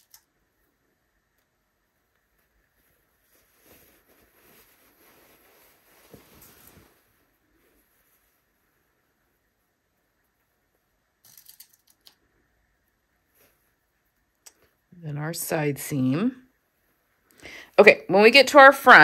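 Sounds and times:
faint fabric rustling: 0.4 - 11.2, 12.2 - 15.0.

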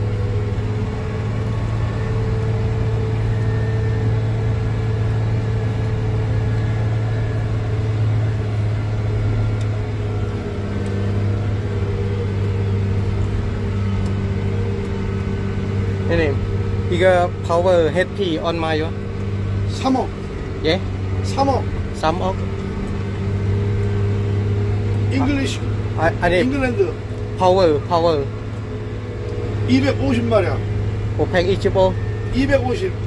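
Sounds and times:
tractor engine hum: 0.0 - 33.0
man talking: 16.0 - 19.0, 25.1 - 28.3, 29.7 - 30.6, 31.2 - 33.0.

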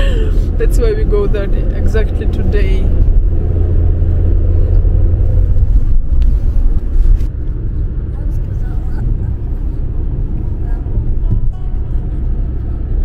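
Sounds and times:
car road and engine rumble: 0.0 - 13.0.

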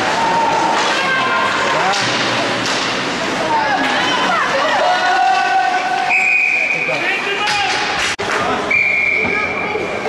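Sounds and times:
spectators' voices and calls: 0.0 - 10.0.

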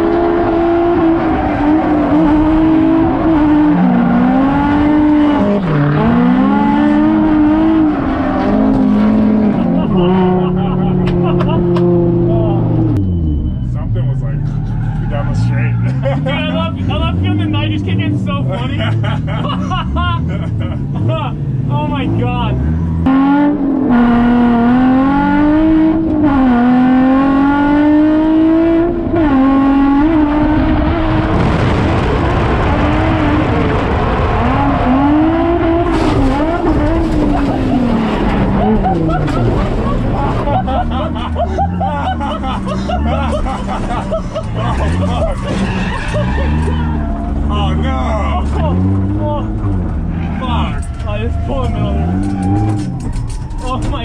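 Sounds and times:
car engine revving: 0.0 - 54.0.

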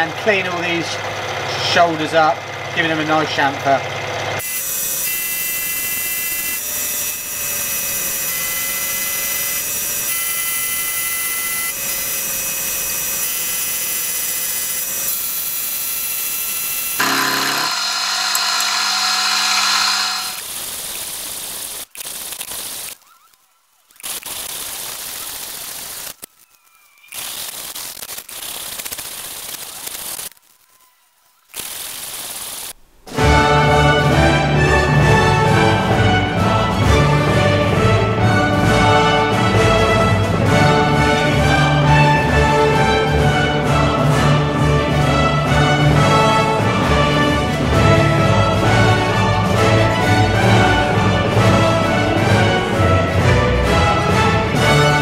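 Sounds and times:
milling machine cutting metal: 4.4 - 21.5
music: 33.1 - 55.0.

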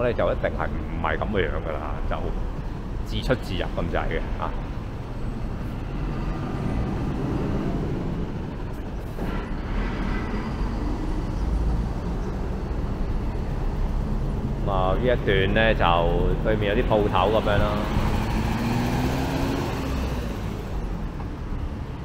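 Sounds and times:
street traffic: 0.0 - 22.0
lorry diesel engine driving past: 0.1 - 22.0.

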